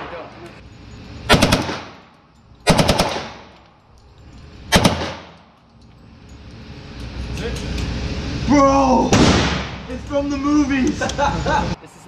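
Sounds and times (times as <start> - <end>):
automatic gunfire bursts: 1.3 - 1.9, 2.7 - 3.4, 4.7 - 5.3.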